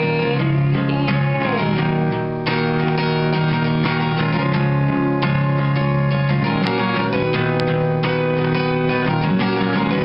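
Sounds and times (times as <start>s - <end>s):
acoustic guitar strummed chords: 0.0s - 10.0s.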